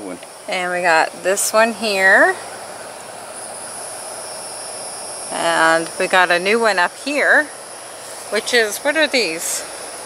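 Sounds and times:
high-pitched whine: 0.0s - 10.0s
outdoor hiss: 0.0s - 10.0s.

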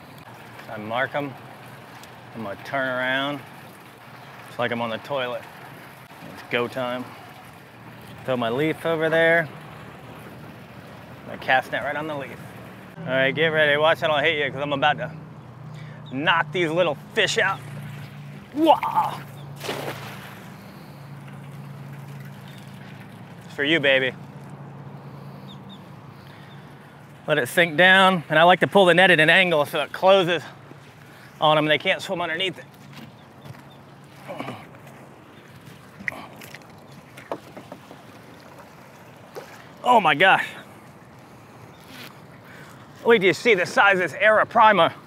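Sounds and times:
water washing beside boat: 0.0s - 45.0s
wind: 0.0s - 45.0s
net splashing on water: 17.6s - 23.6s.

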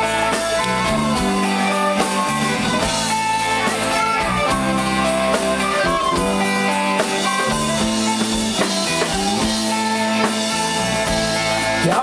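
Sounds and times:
live folk band playing: 0.0s - 12.0s.

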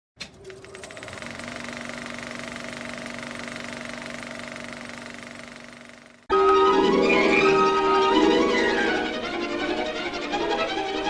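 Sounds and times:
film projector clicks: 0.2s - 6.2s
film projector clattering: 0.2s - 6.3s.

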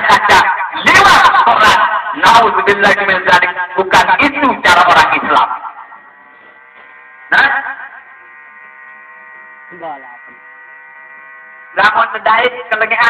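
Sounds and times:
man talking: 0.0s - 5.6s, 11.7s - 13.0s
electrical hum: 0.0s - 13.0s.

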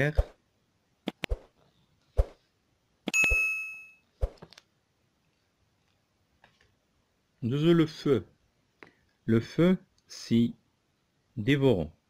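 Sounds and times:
notification bell ding: 3.2s - 4.0s.

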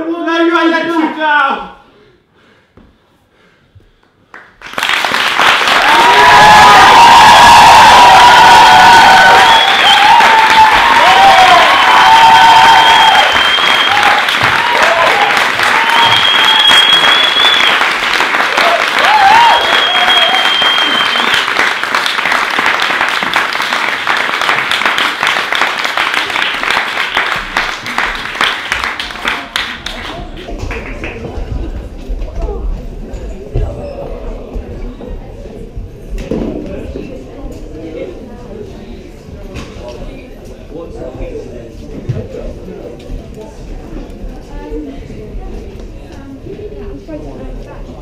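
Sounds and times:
audience applauding: 4.3s - 31.3s
people cheering: 5.4s - 30.8s
long whistles: 9.2s - 10.3s, 12.5s - 14.2s, 15.8s - 17.9s, 19.4s - 21.4s.

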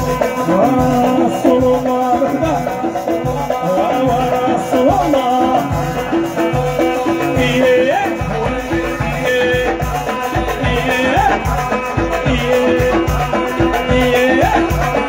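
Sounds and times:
sliding melodic lead line: 0.0s - 15.0s
steady drum beat: 0.0s - 15.0s.

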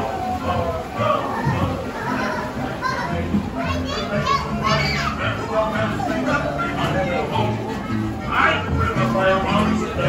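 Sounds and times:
children calling out: 0.0s - 9.9s
ride background music: 0.0s - 10.0s.

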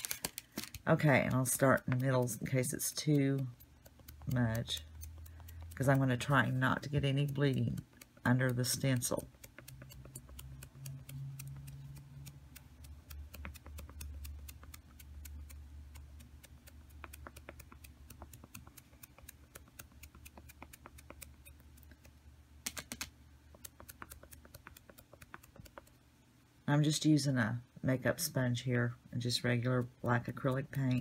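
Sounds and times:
faint steady low hum: 0.0s - 31.0s
sponge dabbing paint taps: 1.2s - 22.2s, 22.8s - 26.0s.

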